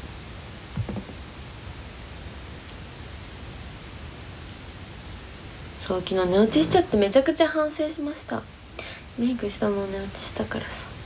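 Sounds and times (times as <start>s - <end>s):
microphone background hiss: 0.0s - 11.0s
soft low bump: 0.8s - 1.2s.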